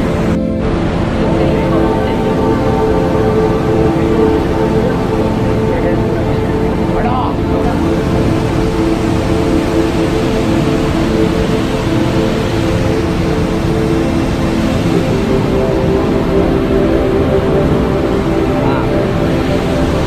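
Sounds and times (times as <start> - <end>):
droning background music: 0.0 - 20.0
steady rushing noise: 0.0 - 20.0.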